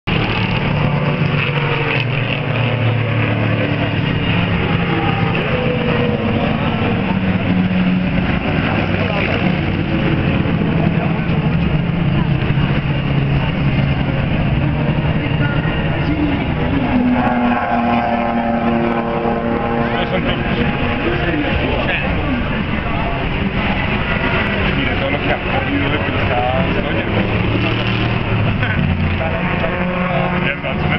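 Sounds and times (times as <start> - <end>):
car engines racing: 0.0 - 30.9.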